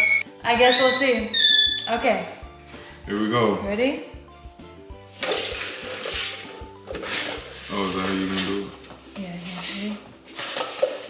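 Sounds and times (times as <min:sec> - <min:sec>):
bowls scraping across countertop: 0:05.1 - 0:08.7, 0:09.4 - 0:11.0.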